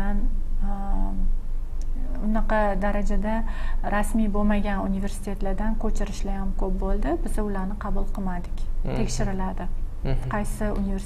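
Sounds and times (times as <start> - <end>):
person's drawn-out hesitation sound: 8.9 - 9.4, 10.1 - 10.6.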